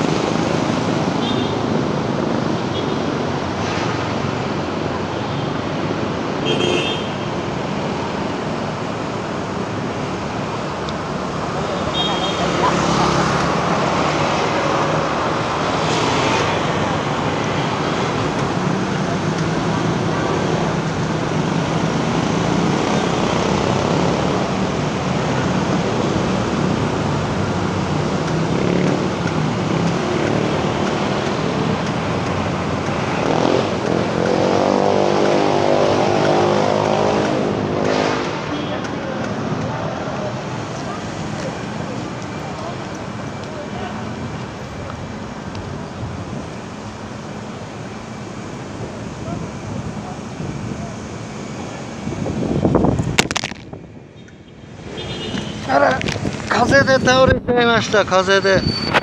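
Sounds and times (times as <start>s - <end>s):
motorcycles passing: 0.0s - 59.0s
tyre noise on asphalt: 8.0s - 59.0s.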